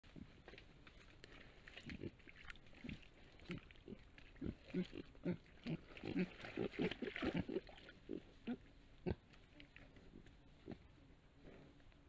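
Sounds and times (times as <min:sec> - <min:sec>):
boar grunting: 0:02.8 - 0:09.2.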